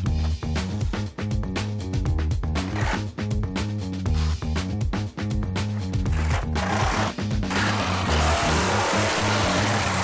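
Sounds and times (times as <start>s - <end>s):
music with repeating bass beat: 0.0s - 10.0s.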